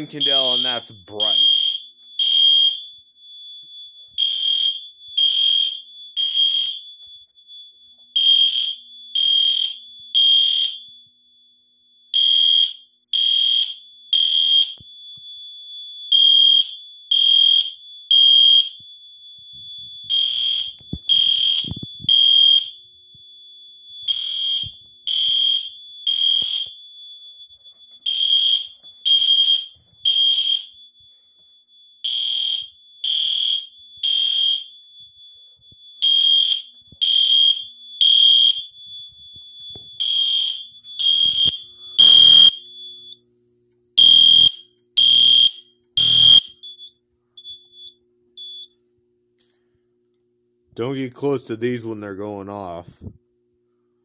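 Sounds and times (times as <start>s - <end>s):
fire alarm horn beeping: 0.0s - 10.9s, 12.0s - 43.2s, 44.0s - 48.9s.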